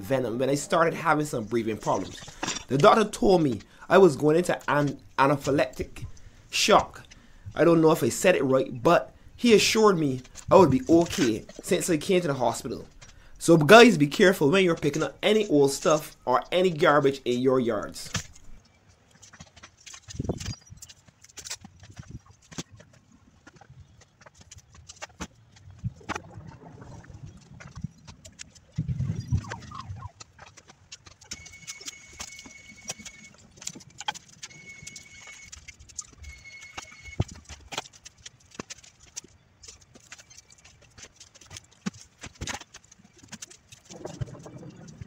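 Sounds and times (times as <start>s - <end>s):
rustling underfoot: 1.0s - 26.1s.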